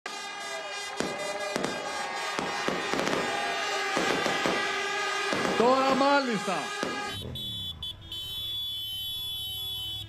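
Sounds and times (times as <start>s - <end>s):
large outdoor crowd din: 0.0s - 10.0s
fireworks bangs: 0.1s - 8.2s.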